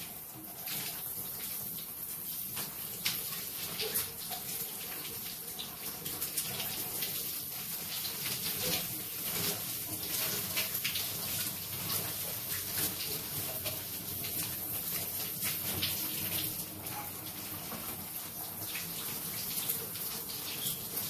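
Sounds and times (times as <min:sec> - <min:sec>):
shower spray splashing: 0:00.0 - 0:21.0.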